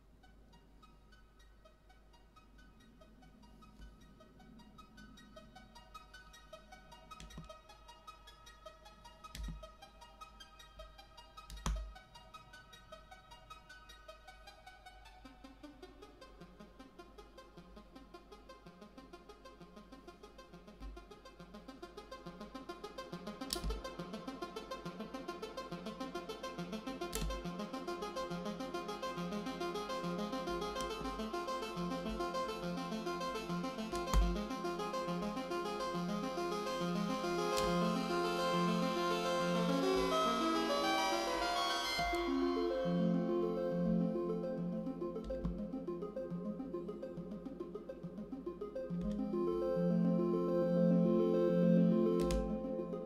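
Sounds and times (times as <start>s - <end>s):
synthesizer short notes: 29.3s - 45.4s.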